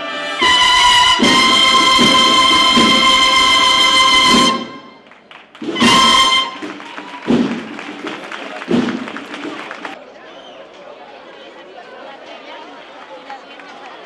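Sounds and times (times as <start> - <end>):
brass band playing: 0.0 - 10.0
crowd chattering: 0.0 - 14.0
low thumps: 5.6 - 10.0.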